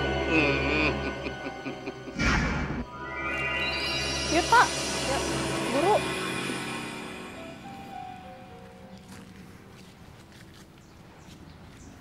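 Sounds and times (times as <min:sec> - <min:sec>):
faint outdoor ambience: 0:00.0 - 0:12.0
footsteps on grass and leaves: 0:07.1 - 0:12.0.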